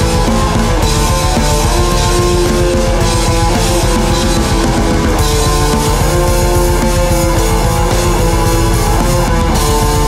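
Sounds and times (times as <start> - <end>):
drums: 0.0 - 10.0
electric guitar chords: 0.0 - 10.0.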